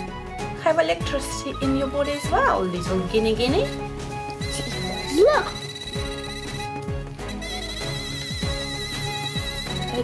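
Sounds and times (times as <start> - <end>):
high warbling electronic tone: 4.4 - 10.0.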